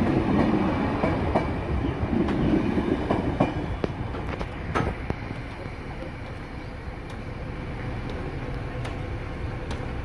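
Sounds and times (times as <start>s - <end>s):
train rumbling: 0.0s - 10.0s.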